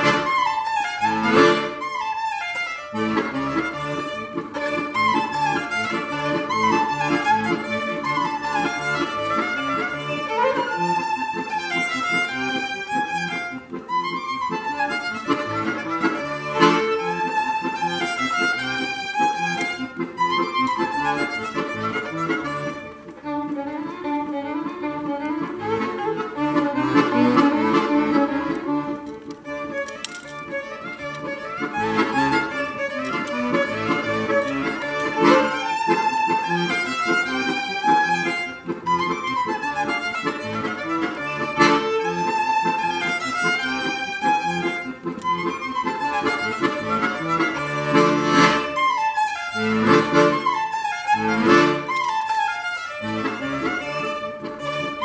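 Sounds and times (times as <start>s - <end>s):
accordion chords: 0.0s - 55.0s
violin melody: 0.0s - 55.0s.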